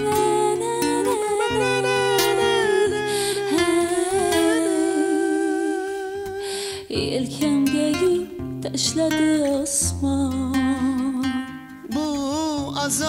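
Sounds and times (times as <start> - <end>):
people humming: 0.0 - 6.9
fingerpicked classical guitar: 0.0 - 13.0.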